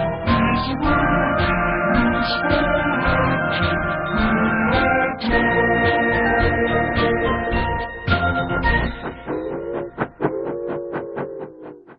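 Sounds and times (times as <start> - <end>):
steady beat: 8.1 - 11.9.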